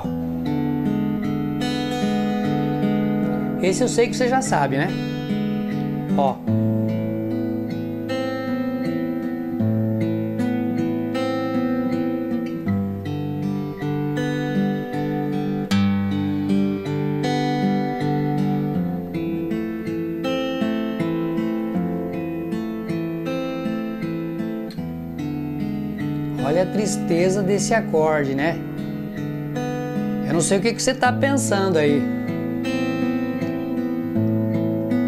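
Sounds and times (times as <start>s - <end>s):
fingerpicked acoustic guitar: 0.0s - 35.0s.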